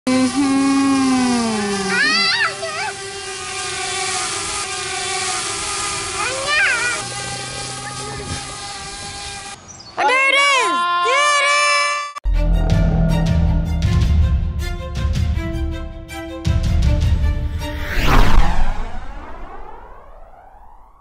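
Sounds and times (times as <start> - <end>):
drone propellers humming: 0.1 - 9.6, 12.2 - 21.0.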